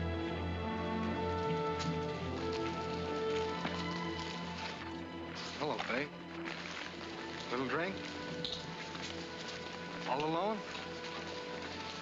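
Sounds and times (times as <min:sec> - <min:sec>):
orchestral music with strings: 0:00.0 - 0:12.0
light rain patter: 0:00.8 - 0:12.0.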